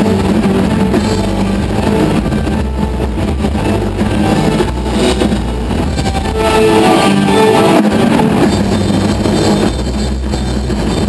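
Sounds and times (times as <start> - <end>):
live rock band playing: 0.0 - 11.0
low droning bass: 0.0 - 11.0.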